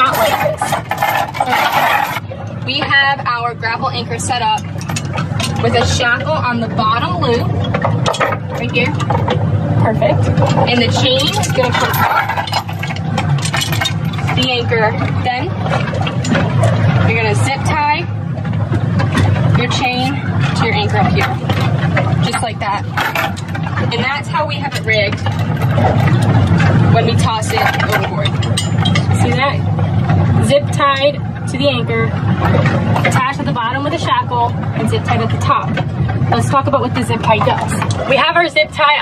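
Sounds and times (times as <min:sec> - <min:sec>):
metal chain clicks: 0:00.0 - 0:02.2, 0:10.4 - 0:14.5, 0:21.2 - 0:23.6
metal chain clinking and rattling: 0:00.0 - 0:02.3, 0:06.8 - 0:09.5, 0:10.2 - 0:17.3, 0:18.5 - 0:30.3
low engine drone: 0:00.0 - 0:39.0.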